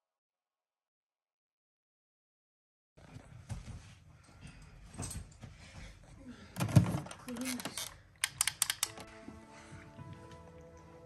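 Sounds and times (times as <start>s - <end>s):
soft music with held notes: 8.6s - 11.0s.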